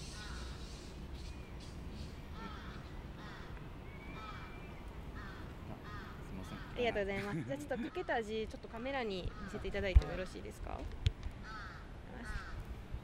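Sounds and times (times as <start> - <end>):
crows cawing: 0.0 - 0.6, 2.3 - 7.1, 7.8 - 8.4, 9.2 - 10.5, 11.4 - 12.7.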